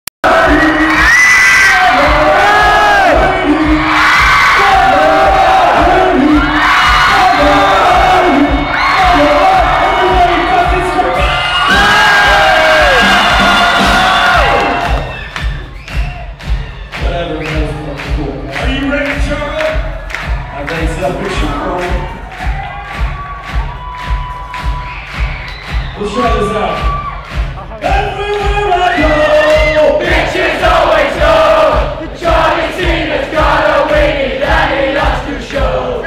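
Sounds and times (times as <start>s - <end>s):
crowd cheering and shouting: 0.2s - 36.0s.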